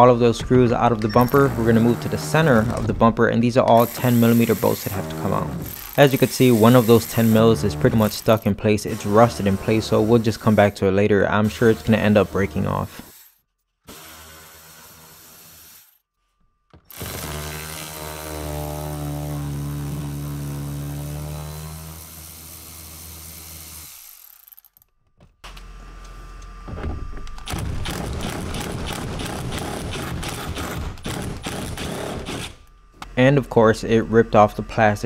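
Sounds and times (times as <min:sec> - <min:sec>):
power ratchet whining: 0:01.0 - 0:02.9, 0:03.7 - 0:10.8, 0:16.8 - 0:24.9, 0:27.2 - 0:35.0.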